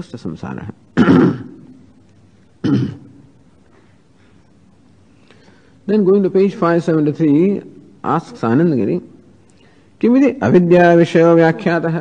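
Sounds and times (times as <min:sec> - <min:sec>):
man clearing throat: 0:01.0 - 0:01.7, 0:02.6 - 0:03.2.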